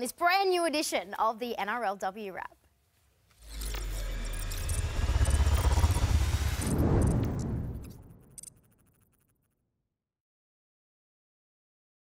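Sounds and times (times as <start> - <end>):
thin rising whine: 3.3 - 9.0
deep rumble: 3.4 - 8.8
high electronic chirps: 3.4 - 9.0.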